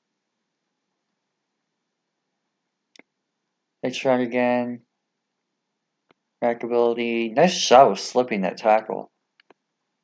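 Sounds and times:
man speaking: 3.8s - 4.8s, 6.4s - 9.1s.

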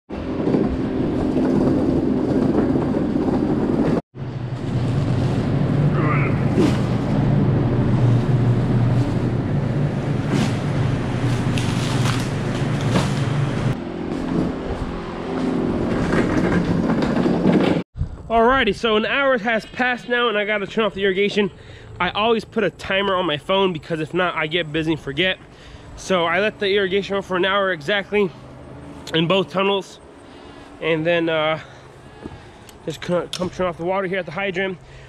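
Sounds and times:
low machine hum: 0.2s - 35.0s.

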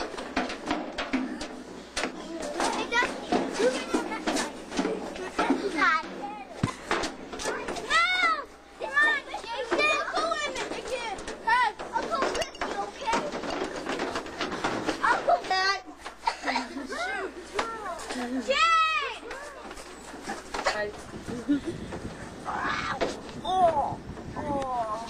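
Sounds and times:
children shouting and squealing: 7.4s - 13.3s, 16.6s - 20.5s, 22.3s - 25.0s.

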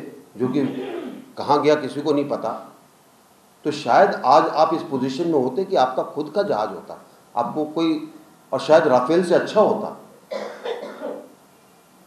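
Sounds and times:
man clearing his throat: 10.3s - 11.3s.

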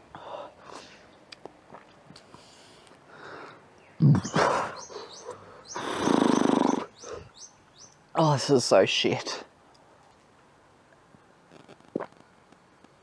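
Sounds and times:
loud rasping burp: 5.8s - 6.9s.

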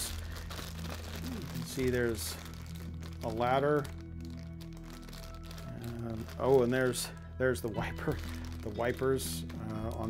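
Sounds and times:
plastic bag crinkling: 0.0s - 10.0s
soft background music: 0.0s - 10.0s.

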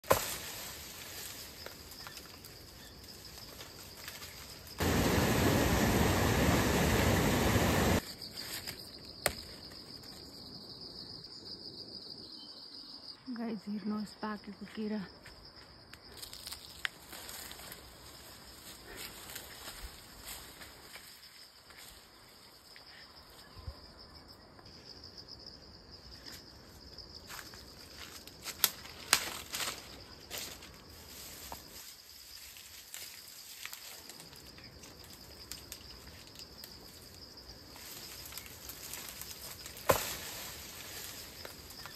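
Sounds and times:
insects chirring: 0.0s - 41.9s
loud even rushing noise: 4.8s - 8.0s.

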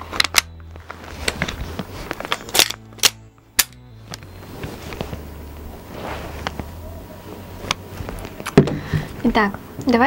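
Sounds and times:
toy rifle parts clacking: 2.2s - 3.8s.

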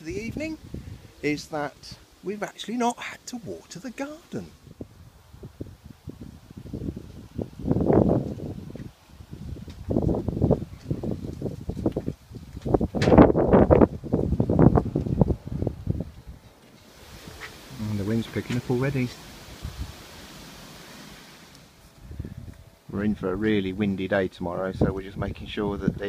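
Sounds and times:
wind buffeting microphone: 0.0s - 2.0s, 4.5s - 26.0s
leaves rustling: 0.0s - 22.9s.

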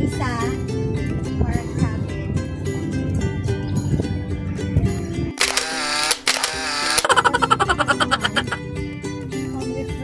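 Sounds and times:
background music: 0.0s - 10.0s
sharp clicks: 5.4s - 7.1s
camera shutter sound effect: 5.4s - 7.2s.

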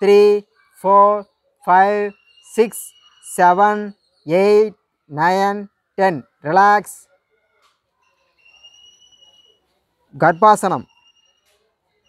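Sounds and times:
bird whistling a steady note: 0.4s - 4.8s, 8.0s - 12.0s.

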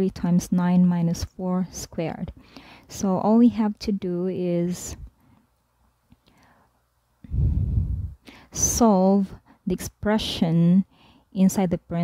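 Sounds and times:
faint breath: 2.4s - 2.9s, 6.3s - 8.6s, 10.9s - 11.3s.

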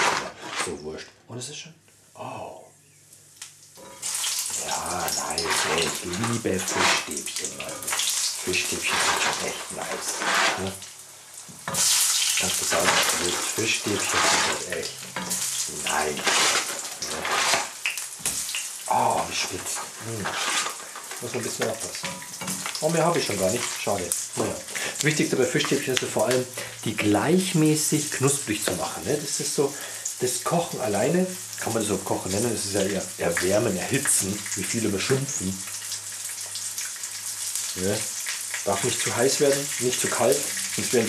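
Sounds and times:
food sizzling in hot oil: 1.9s - 41.0s
oil crackling: 3.2s - 41.0s.

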